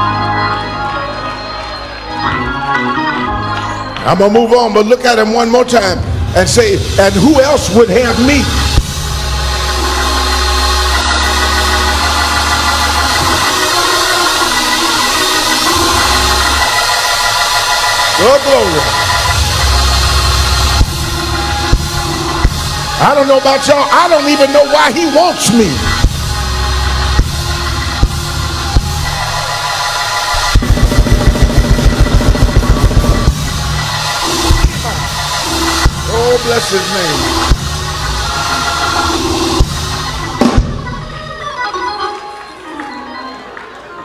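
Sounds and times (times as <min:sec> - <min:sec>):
congregation responding: 0:00.0 - 0:30.6, 0:33.1 - 0:41.6
organ chords: 0:00.0 - 0:42.9
fast low drum hits: 0:08.6 - 0:09.4, 0:18.8 - 0:23.0, 0:27.2 - 0:29.5, 0:30.4 - 0:36.2, 0:37.4 - 0:38.0, 0:39.6 - 0:41.0
low organ bass note: 0:17.6 - 0:23.0, 0:30.3 - 0:38.1.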